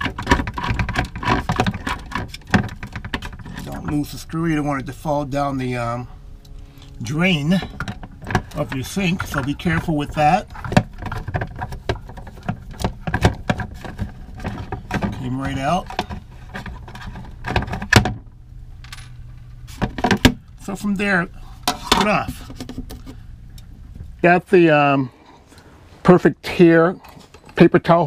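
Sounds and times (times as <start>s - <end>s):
plastic holder handled: 0.0s - 4.0s, 7.6s - 18.2s.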